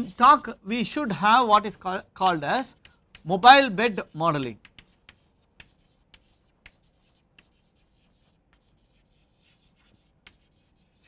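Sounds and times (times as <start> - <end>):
chalk scratching on blackboard: 0.0 - 11.0
chalk tapping: 0.0 - 11.0.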